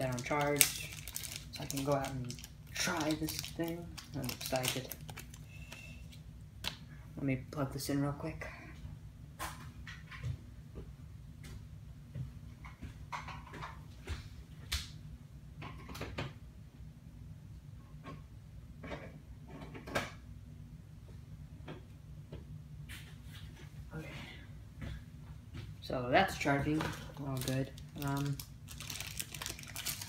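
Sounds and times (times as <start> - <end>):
steady low hum: 0.0 - 13.1, 16.3 - 30.0.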